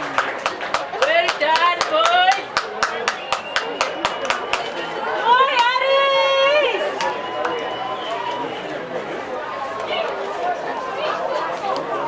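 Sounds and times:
hand clapping: 0:00.0 - 0:04.7
voices calling out: 0:01.0 - 0:12.0.

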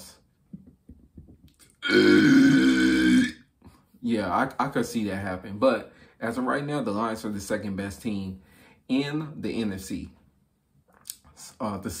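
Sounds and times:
man growling: 0:01.8 - 0:03.4
mouth clicks: 0:10.9 - 0:11.4.

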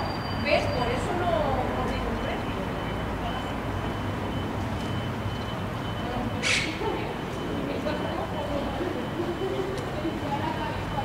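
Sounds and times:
distant traffic rumble: 0:00.0 - 0:11.0.

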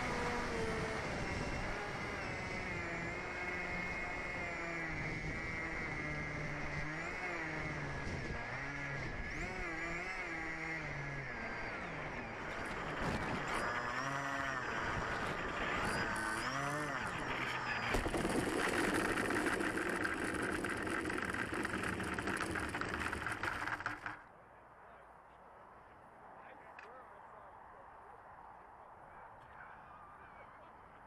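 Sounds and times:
motor running: 0:00.0 - 0:24.3.

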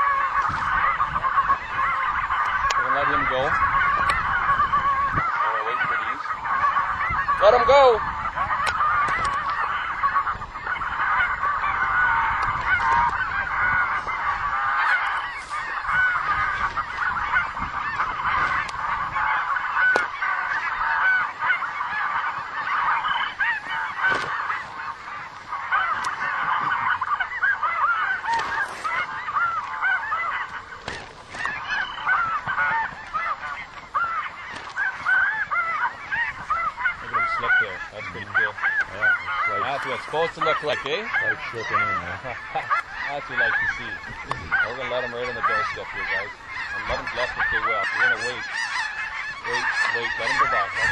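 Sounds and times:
geese honking: 0:00.0 - 0:50.9.

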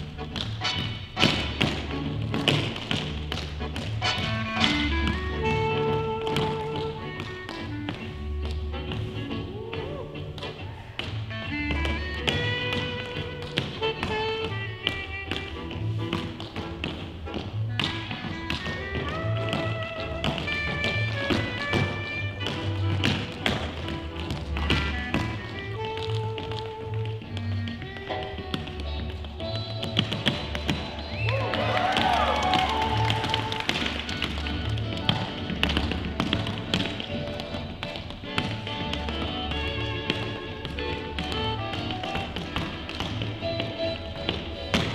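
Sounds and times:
swing jazz music: 0:00.0 - 0:44.9
tap shoes on dance floor: 0:00.0 - 0:44.9.

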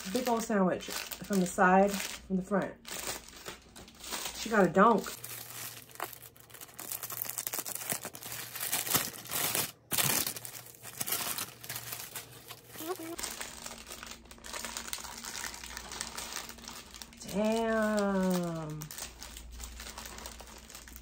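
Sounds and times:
wrapping paper crinkling: 0:00.0 - 0:21.0.

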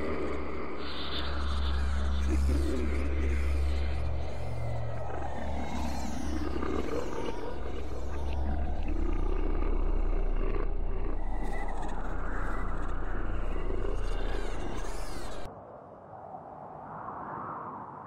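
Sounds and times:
deep rumbling drone: 0:00.0 - 0:15.5.

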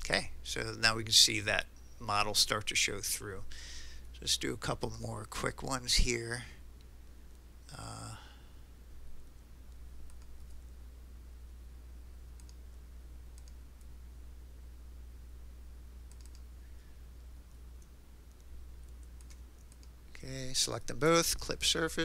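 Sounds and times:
steady low hum: 0:00.0 - 0:22.0
computer mouse clicks: 0:09.7 - 0:10.6, 0:12.3 - 0:12.6, 0:13.3 - 0:14.0, 0:16.0 - 0:16.5, 0:17.5 - 0:20.0.

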